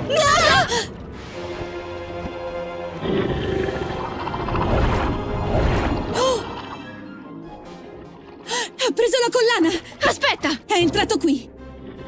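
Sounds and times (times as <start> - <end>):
tense background music: 0.0 - 12.0.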